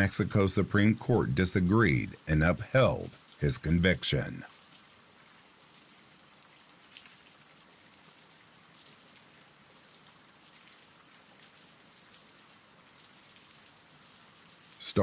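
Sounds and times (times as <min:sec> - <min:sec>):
faint steady rain: 0:00.0 - 0:15.0.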